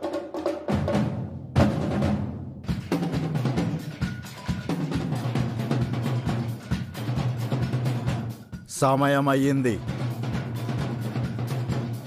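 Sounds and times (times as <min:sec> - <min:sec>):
loud drum hit: 0:00.4 - 0:04.0, 0:09.8 - 0:12.0.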